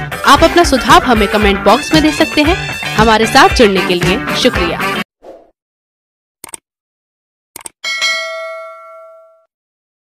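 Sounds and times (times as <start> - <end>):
notification bell ding: 7.8 - 9.5.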